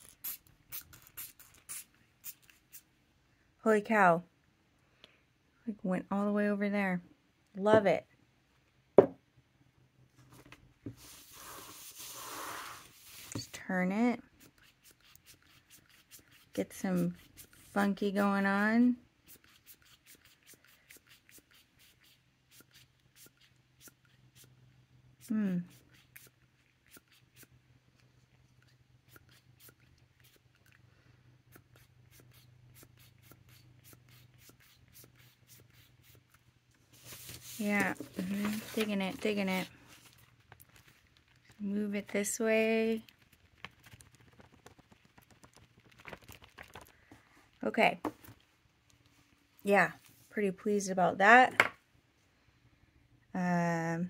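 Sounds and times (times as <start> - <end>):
paper rustling: 36.9 - 41.6, 43.0 - 47.3.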